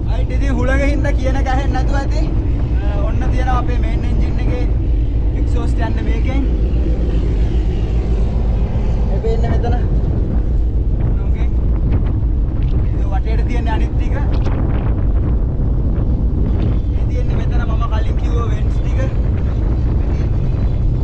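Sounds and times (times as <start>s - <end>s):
ship engine rumble: 0.0s - 21.0s.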